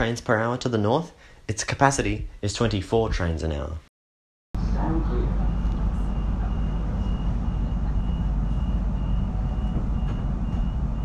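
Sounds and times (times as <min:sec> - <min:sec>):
train carriage rumbling on rails: 0:06.2 - 0:11.0.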